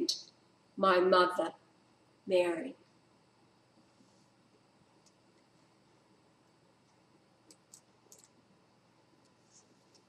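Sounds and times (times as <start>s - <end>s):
computer mouse clicks: 6.9s - 8.4s.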